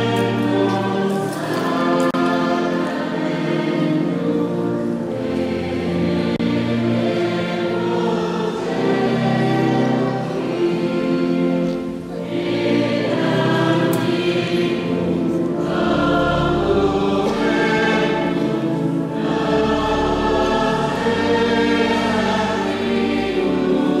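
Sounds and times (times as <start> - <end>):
choir singing a slow hymn: 0.0 - 24.0.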